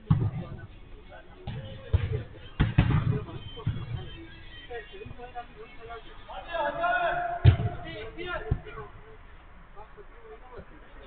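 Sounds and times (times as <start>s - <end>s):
football thumps on artificial turf: 0.0s - 0.7s, 1.4s - 4.1s, 7.4s - 8.9s.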